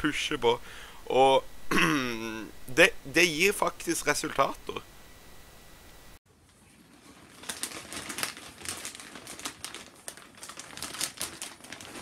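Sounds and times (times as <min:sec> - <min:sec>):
plastic bag crinkling: 0:06.3 - 0:12.0.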